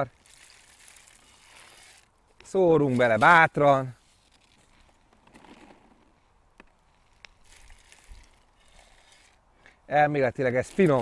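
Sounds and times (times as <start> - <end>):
scoop scraping granules: 0.0 - 6.1, 7.0 - 9.4, 10.3 - 11.0.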